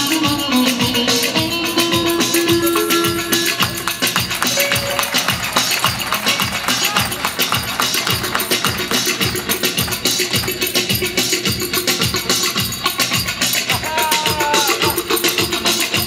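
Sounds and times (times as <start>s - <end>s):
instrumental folk dance music: 0.0s - 16.0s
rapid clicking percussion: 0.1s - 16.0s.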